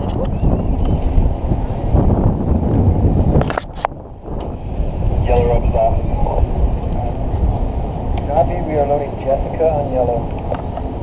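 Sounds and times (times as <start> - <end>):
wind buffeting microphone: 0.0 - 11.0
muffled voices: 5.1 - 10.3.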